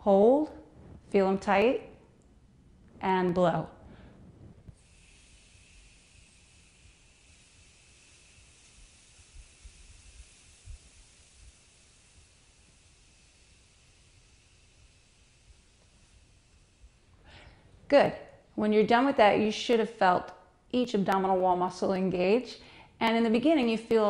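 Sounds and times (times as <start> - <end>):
breath hissing through closed fist: 3.8 - 17.7.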